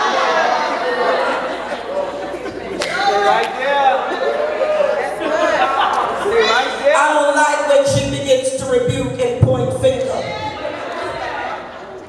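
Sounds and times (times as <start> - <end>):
background chatter: 0.0 - 8.3, 9.1 - 12.0
voice over microphone: 6.9 - 10.5.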